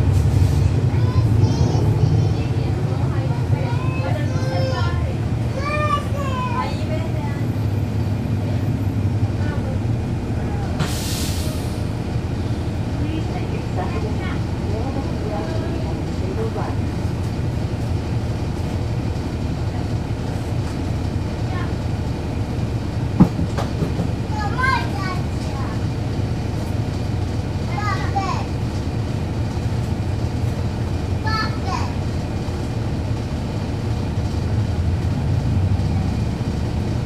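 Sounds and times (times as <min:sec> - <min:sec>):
bus diesel engine rumbling: 0:00.0 - 0:37.0.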